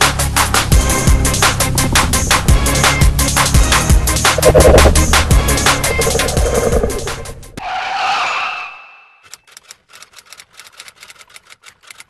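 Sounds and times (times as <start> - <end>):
whoosh sound effect: 4.4 - 7.4.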